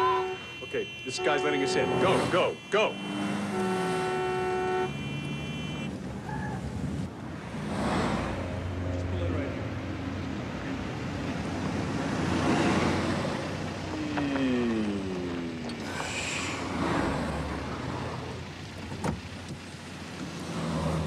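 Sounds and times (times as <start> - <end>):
car horns honking: 0.0 - 6.0
cars passing: 0.0 - 21.0
street traffic noise: 0.0 - 21.0.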